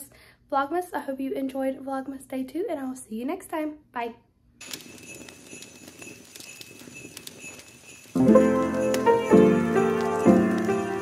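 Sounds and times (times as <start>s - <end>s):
horse hooves clip-clopping: 4.6s - 11.0s
steady high ringing: 4.6s - 11.0s.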